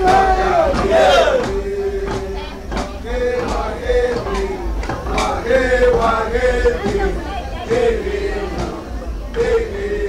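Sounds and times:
sharp knocks: 0.0s - 9.8s
voices chanting: 0.0s - 10.0s.

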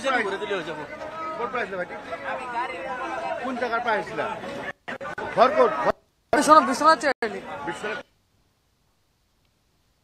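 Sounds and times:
overlapping chatter of voices: 0.0s - 8.5s.

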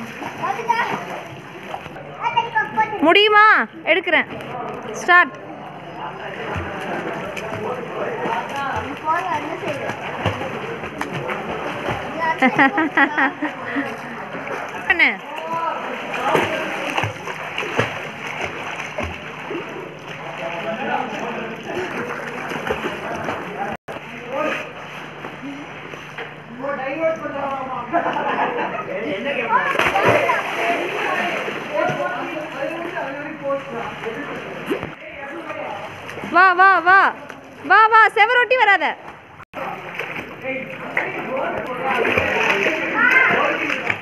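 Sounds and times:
water splashing from swimming: 0.0s - 2.9s, 6.2s - 26.4s, 29.5s - 44.0s
people's voices and calls: 0.0s - 44.0s.

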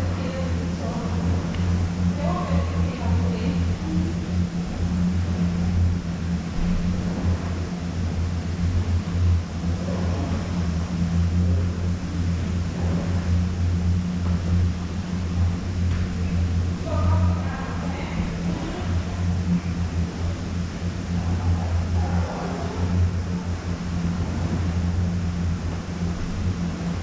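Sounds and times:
conveyor lift humming: 0.0s - 27.0s
faint voices: 20.3s - 24.7s.

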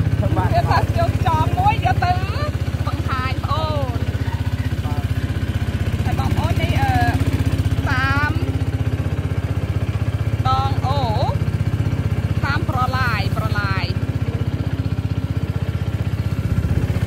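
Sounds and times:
motorboat engine droning: 0.0s - 17.0s.

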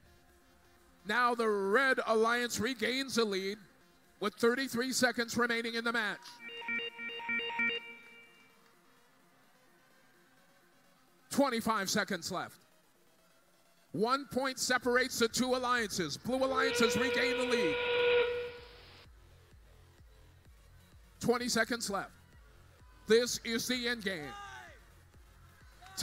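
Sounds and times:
electronic alert of alternating tones: 6.3s - 8.5s, 16.4s - 18.6s
electronic held note: 16.3s - 18.8s.

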